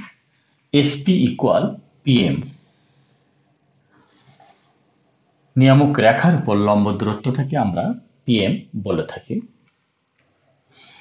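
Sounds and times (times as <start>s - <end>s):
marker scratching on whiteboard: 3.9s - 4.8s.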